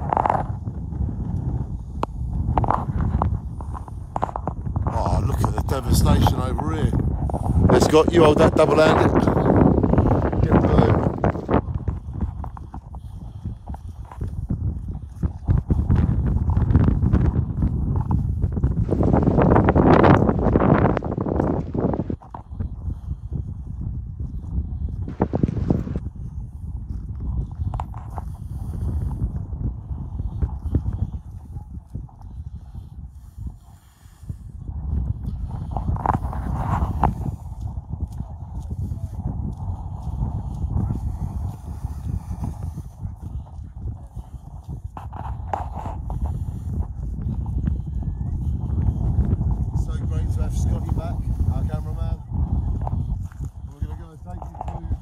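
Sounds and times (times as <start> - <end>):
footsteps on path: 0.0 - 55.0
wind buffeting microphone: 0.0 - 55.0.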